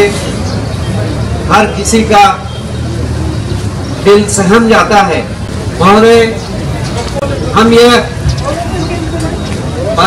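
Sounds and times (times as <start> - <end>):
man speaking into microphone: 1.4 - 2.6, 4.0 - 6.5, 7.4 - 8.2.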